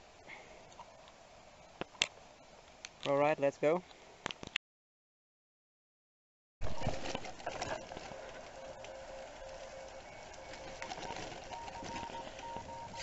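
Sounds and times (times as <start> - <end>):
bicycle rolling on gravel: 6.6 - 13.0
faint two-pitch beeping tones: 8.6 - 13.0.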